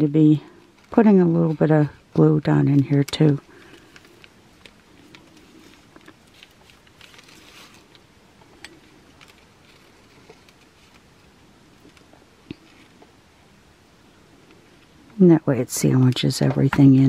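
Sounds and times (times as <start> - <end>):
soft rustles: 0.0 - 13.2.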